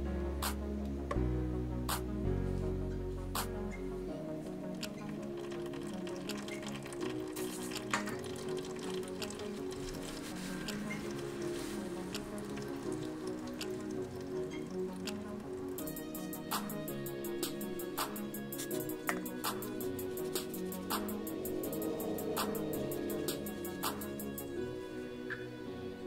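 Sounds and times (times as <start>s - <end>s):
background music with sustained notes: 0.0s - 26.0s
faint clicks and pattering: 4.8s - 16.7s.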